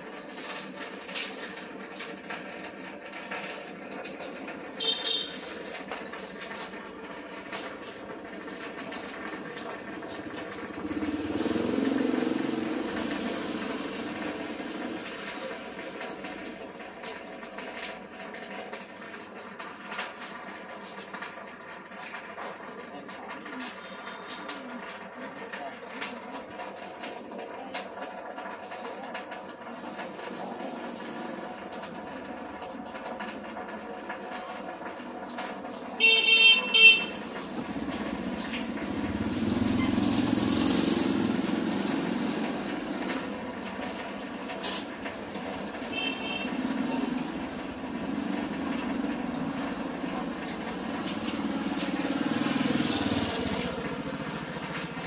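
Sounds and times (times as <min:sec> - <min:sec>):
motorbike passing: 0:04.7 - 0:16.2, 0:36.0 - 0:55.0
motorbike horn: 0:04.8 - 0:05.4, 0:36.0 - 0:37.8, 0:45.9 - 0:46.9
background chatter: 0:21.8 - 0:55.0.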